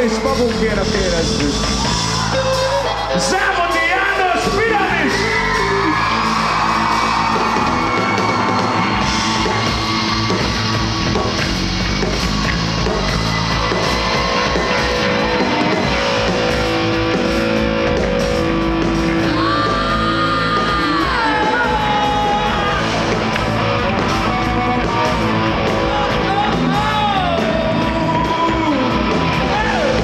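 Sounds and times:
rock band playing live: 0:00.0 - 0:30.0
crowd whooping and yelling: 0:00.7 - 0:30.0
electric guitar: 0:04.4 - 0:30.0.

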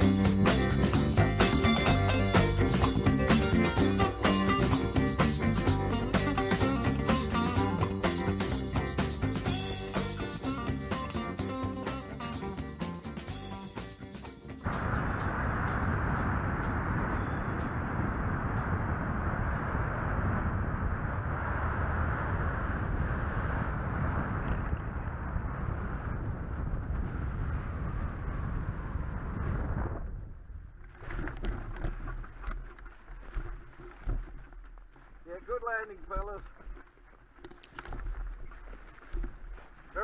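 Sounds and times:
wind buffeting microphone: 0:14.6 - 0:30.8.

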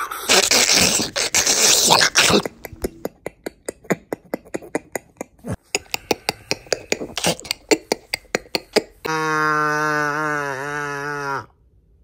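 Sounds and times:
man clicking mouth noises: 0:01.2 - 0:09.2.

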